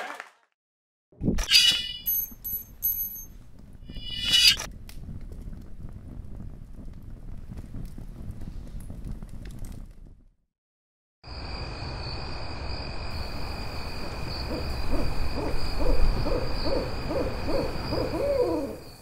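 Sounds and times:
high-pitched ringing: 1.5 - 3.3
owl hooting: 14.3 - 19.0.

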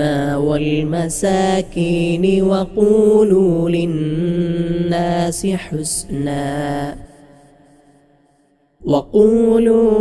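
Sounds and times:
man reciting melodically: 0.0 - 7.6, 8.8 - 10.0.

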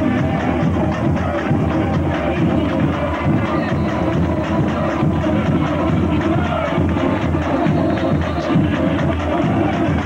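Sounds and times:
people singing: 0.0 - 10.0
samba drumming: 0.0 - 10.0.

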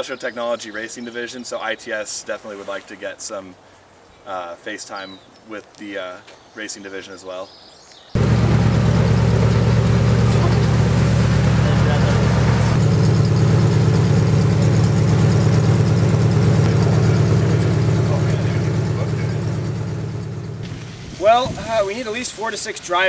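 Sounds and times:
race car engine idling: 8.2 - 21.1.

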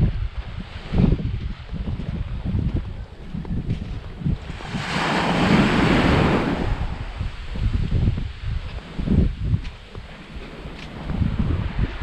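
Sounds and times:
wind buffeting microphone: 0.0 - 12.0
sea waves washing up beach: 4.2 - 9.2.

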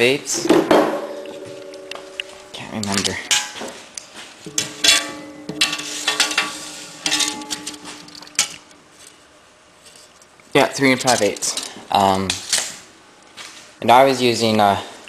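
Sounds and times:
faint ringing tone: 1.0 - 3.2.

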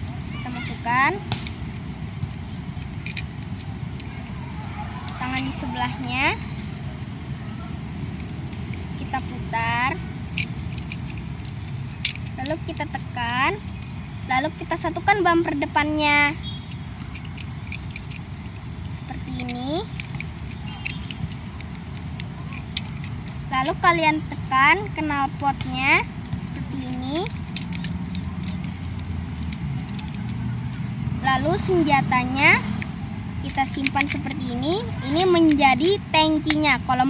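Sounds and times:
plastic toy parts clicking: 1.4 - 4.4, 5.0 - 6.4, 7.4 - 15.7, 16.4 - 24.8, 25.6 - 30.5, 31.5 - 37.0.

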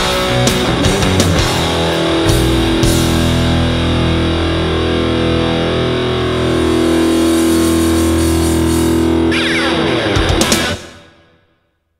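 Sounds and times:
electric guitar rock music: 0.0 - 11.6.

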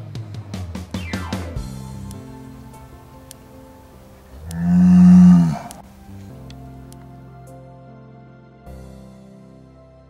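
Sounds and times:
soft background music: 0.0 - 10.0
cow mooing: 4.4 - 5.9.

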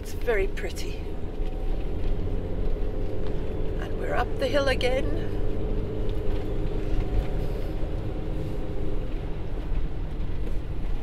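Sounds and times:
van engine and tyre rumble: 0.0 - 11.0.

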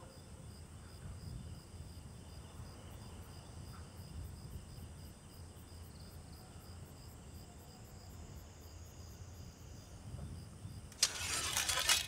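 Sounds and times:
crickets chirping: 0.1 - 12.0.

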